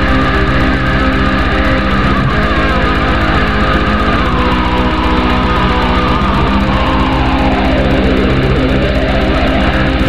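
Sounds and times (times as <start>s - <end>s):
distorted electric guitars: 0.0s - 10.0s
rapid drumbeat: 0.0s - 10.0s.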